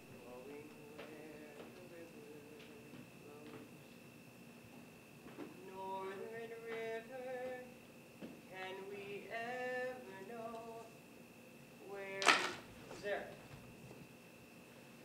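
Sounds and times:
woman singing unaccompanied: 0.2s - 3.6s, 5.6s - 7.8s, 8.5s - 11.0s, 11.8s - 13.2s.

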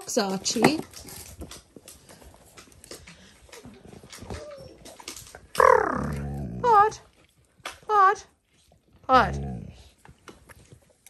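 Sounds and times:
puppies scuffling: 0.0s - 5.6s
puppy yips: 4.2s - 5.0s.

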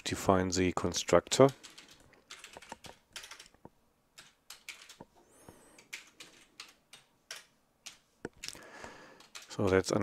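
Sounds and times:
computer keyboard keystrokes: 1.4s - 5.1s, 5.8s - 10.0s.

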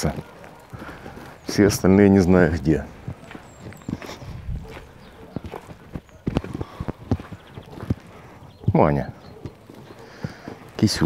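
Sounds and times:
footsteps on dry leaves: 0.0s - 8.5s, 9.4s - 11.0s.

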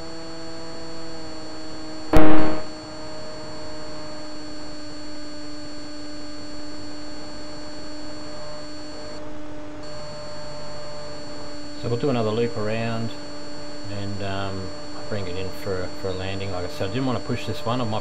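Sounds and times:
loud sharp knock: 2.2s - 2.7s.

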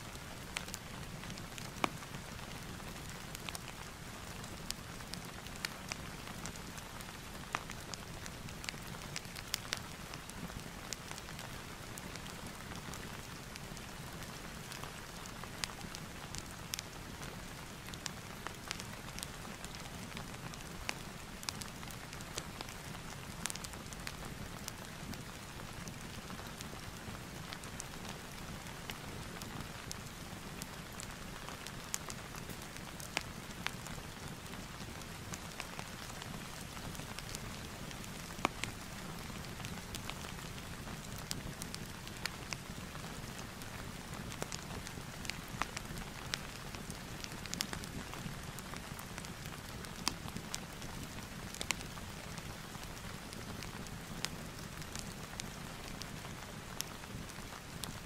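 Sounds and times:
steady rain: 0.0s - 58.0s
fireplace crackling: 0.1s - 58.0s.

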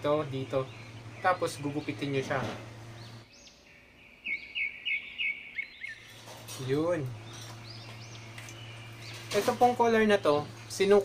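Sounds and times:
bird chirping: 0.0s - 11.0s.

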